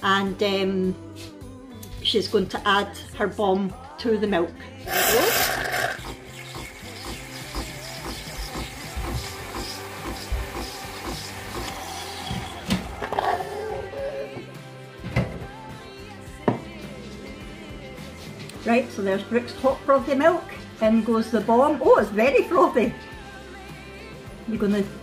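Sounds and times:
background music: 0.0s - 25.0s
milk frother hissing: 4.9s - 14.4s.

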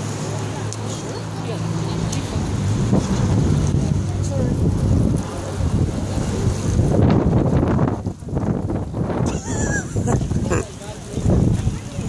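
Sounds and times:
crowd voices: 0.0s - 12.0s
wind buffeting microphone: 1.6s - 12.0s.

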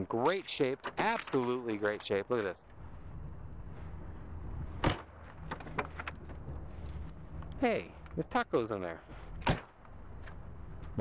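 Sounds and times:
steady low rumble: 2.5s - 11.0s.

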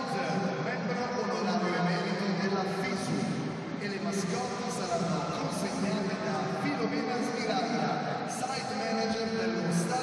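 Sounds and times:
stadium background: 0.0s - 10.0s.

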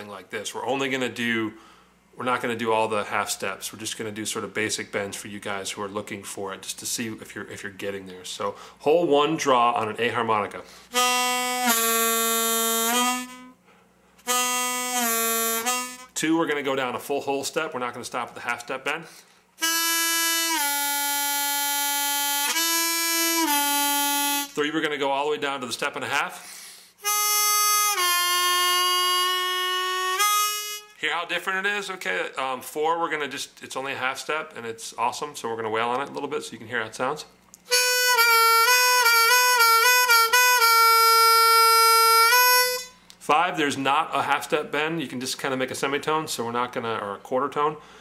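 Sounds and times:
harmonica note bending: 10.7s - 16.3s, 19.6s - 24.7s, 26.4s - 31.4s, 37.6s - 43.1s.

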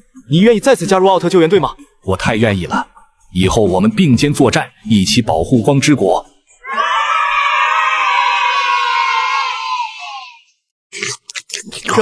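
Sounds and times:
children cheering: 6.6s - 10.4s.

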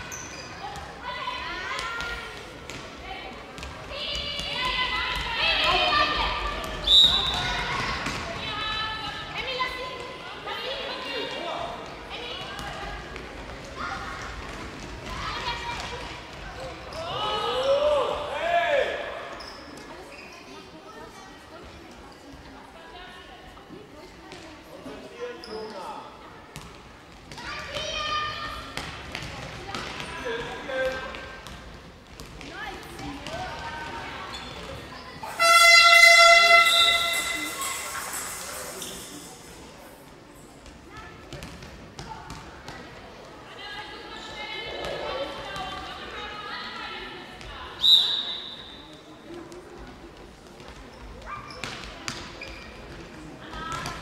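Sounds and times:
ball bouncing on hall floor: 1.7s - 8.9s, 26.5s - 37.8s, 40.6s - 43.0s, 49.3s - 54.0s
loud horn: 35.3s - 37.4s
sharp whistle blast: 47.8s - 48.8s.

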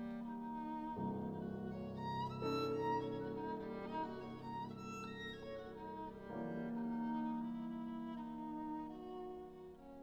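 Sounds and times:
piano accompaniment: 0.0s - 10.0s
violin: 0.0s - 10.0s.

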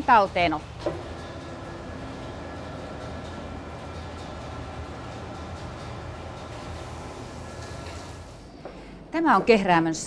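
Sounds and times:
machinery humming with whines: 0.0s - 9.1s.

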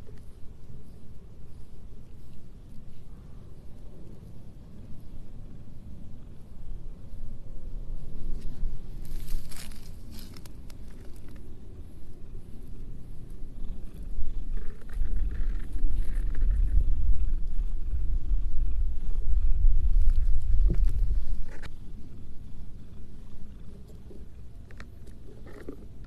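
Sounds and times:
brush strokes rustling: 0.0s - 5.2s, 7.9s - 16.8s
cat purring: 11.0s - 26.0s.

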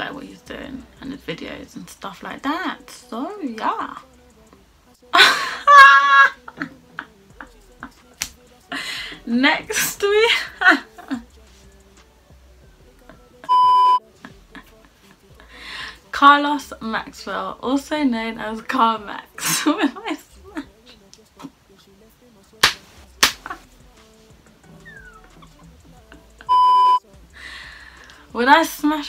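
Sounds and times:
high-pitched censor bleep: 13.5s - 14.0s, 26.5s - 27.0s.

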